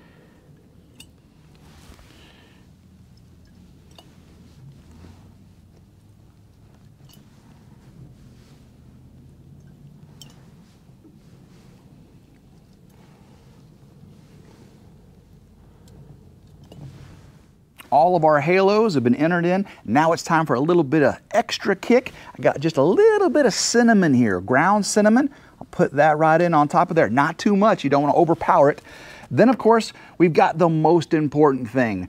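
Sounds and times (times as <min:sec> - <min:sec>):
low steady hum: 0:00.0 - 0:32.0.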